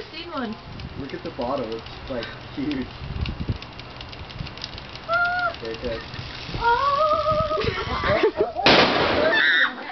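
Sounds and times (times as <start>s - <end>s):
plastic bottle bursting with loud bang: 8.6s - 9.4s.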